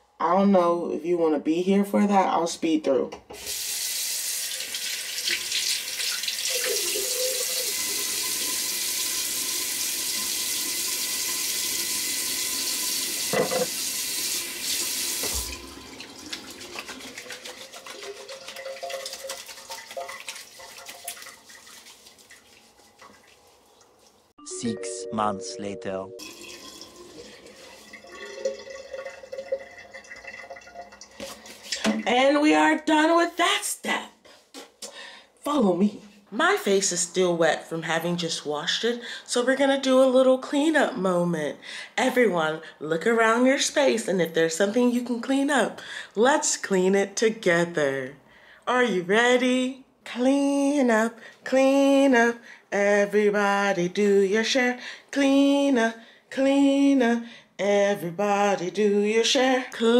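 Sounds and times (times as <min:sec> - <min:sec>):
tap running into a sink: 0:12.5 - 0:14.0, 0:14.6 - 0:17.2.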